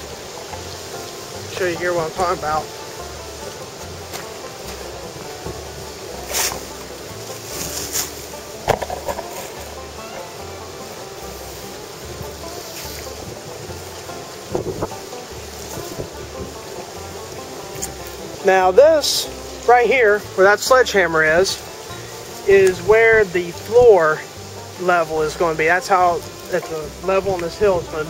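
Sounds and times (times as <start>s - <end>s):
music with slow bass line: 0.0s - 28.0s
rushing hiss of outdoor noise: 0.0s - 28.0s
knocks and thumps: 2.2s - 11.2s, 12.1s - 18.2s.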